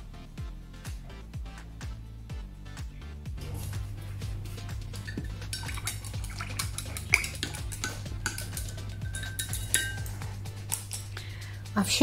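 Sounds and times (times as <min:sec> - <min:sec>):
paintbrush clinking on metal palette: 0:05.0 - 0:11.4.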